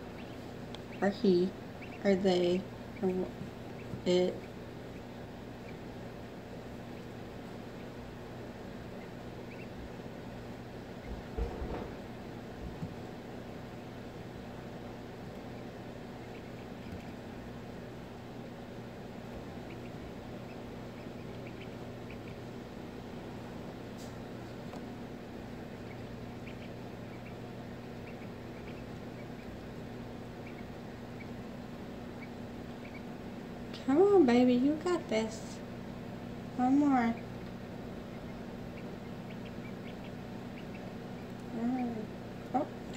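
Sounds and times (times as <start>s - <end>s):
duckling peeping: 0.0s - 33.9s, 36.5s - 42.9s
egg incubator humming: 0.0s - 42.9s
soft bumps: 11.0s - 12.0s.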